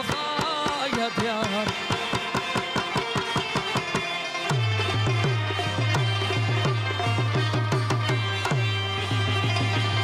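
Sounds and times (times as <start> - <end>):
hand drum played fast: 0.0 - 10.0.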